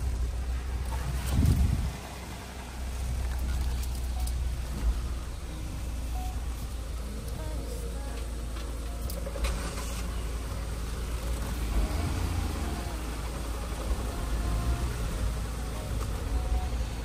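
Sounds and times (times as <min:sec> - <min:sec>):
engine and road rumble: 0:00.0 - 0:17.0.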